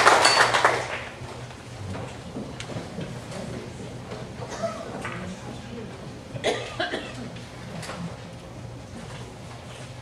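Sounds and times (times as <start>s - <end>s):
murmur of voices: 1.7s - 8.9s
person coughing: 6.4s - 7.3s.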